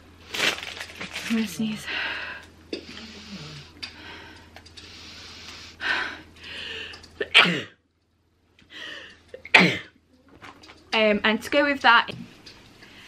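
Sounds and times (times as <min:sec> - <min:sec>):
breathy halting inhales: 0:01.9 - 0:07.0.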